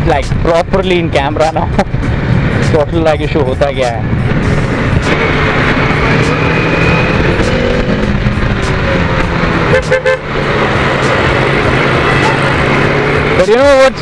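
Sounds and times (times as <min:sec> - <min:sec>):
road and wind noise: 0:00.0 - 0:14.0
motorcycle engine running: 0:04.0 - 0:14.0
vehicle horn: 0:09.7 - 0:10.3.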